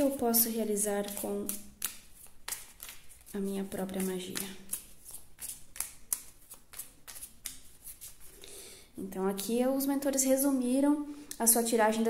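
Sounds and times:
cards being shuffled: 0.0 - 8.4.

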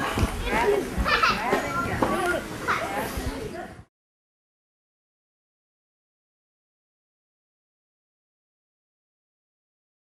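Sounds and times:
children chattering and calling out: 0.0 - 3.9.

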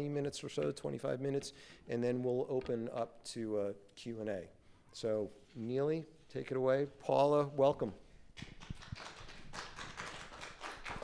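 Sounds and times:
light applause: 8.4 - 11.0.

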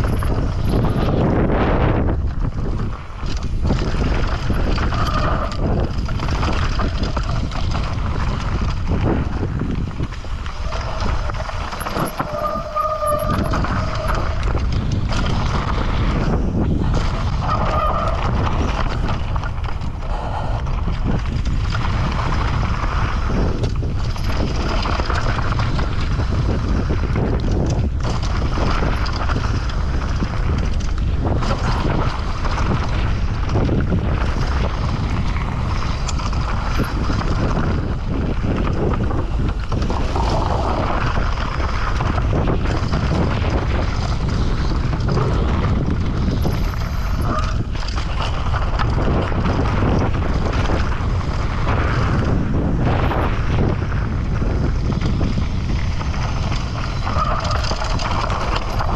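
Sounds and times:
bike knocks and rattles: 0.0 - 58.9
wind buffeting microphone: 0.0 - 58.9.

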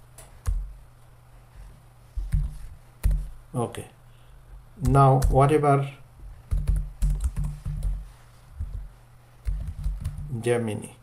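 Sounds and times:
computer keyboard typing: 2.3 - 3.2, 6.5 - 8.0, 8.6 - 10.4.

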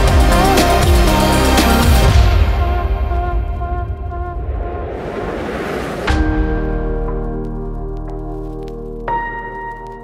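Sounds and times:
background music: 0.0 - 10.0
rushing whoosh of noise: 3.7 - 7.0.

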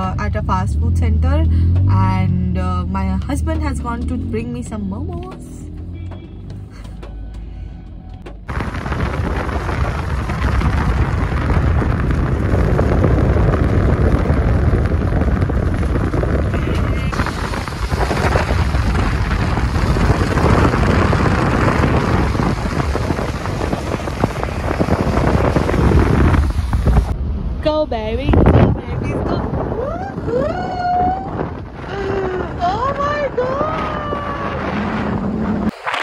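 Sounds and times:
rush of moving car: 0.0 - 36.0
wind buffeting microphone: 8.2 - 35.8.

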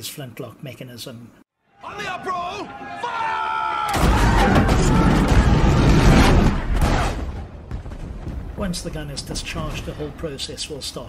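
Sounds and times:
cannon blast rumbling: 3.9 - 10.5.

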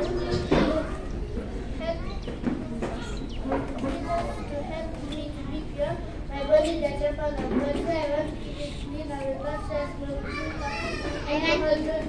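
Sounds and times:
girl speaking into a microphone: 0.0 - 12.0.

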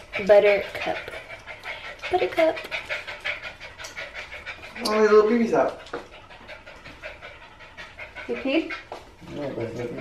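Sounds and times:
puppy panting: 0.0 - 10.0.

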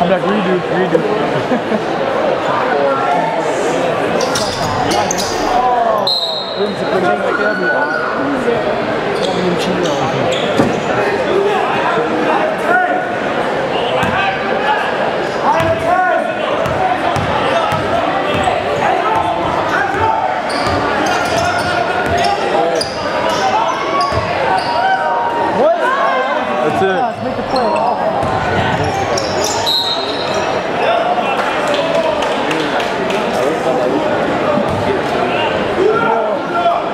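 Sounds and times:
crowd chatter and shouts: 0.0 - 36.9.

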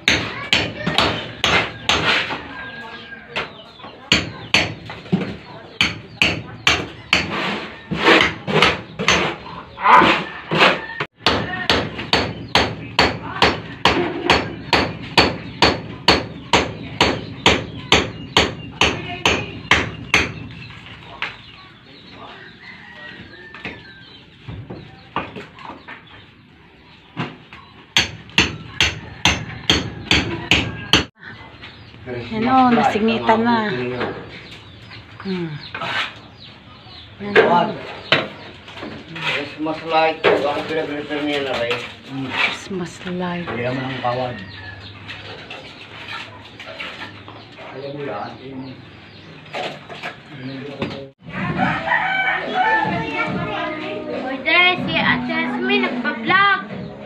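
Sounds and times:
hammer striking masonry: 0.0 - 2.2, 4.1 - 7.4, 8.0 - 9.4, 11.1 - 20.5, 27.9 - 31.2.

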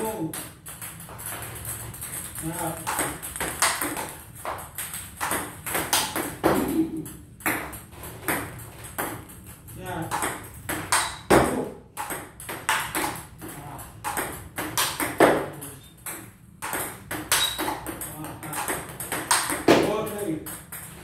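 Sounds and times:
ping-pong ball clicking: 0.3 - 21.0.

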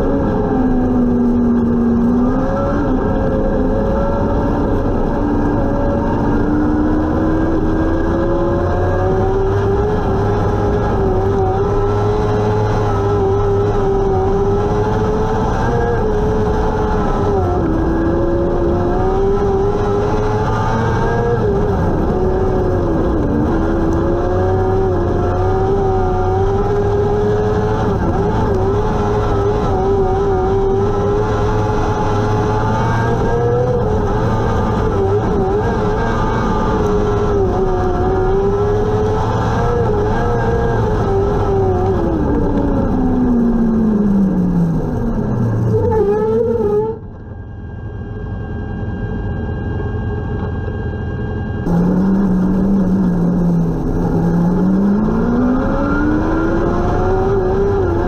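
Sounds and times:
race car engine at high revs: 0.0 - 58.0.

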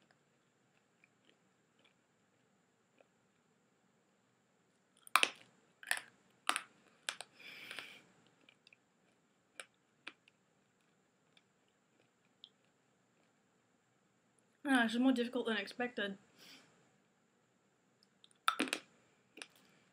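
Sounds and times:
mints crunched between teeth: 5.0 - 13.3.

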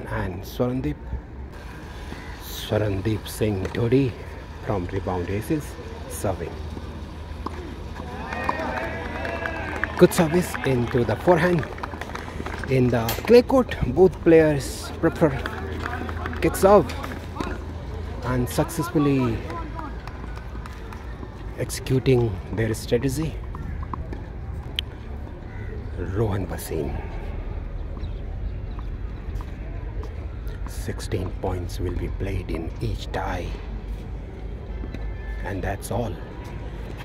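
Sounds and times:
low outdoor rumble: 0.0 - 35.4.

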